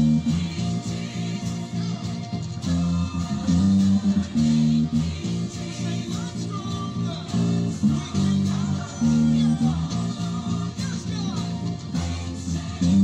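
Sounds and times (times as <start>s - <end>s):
backing music: 0.0s - 13.0s
electric bass guitar low notes: 0.0s - 13.0s.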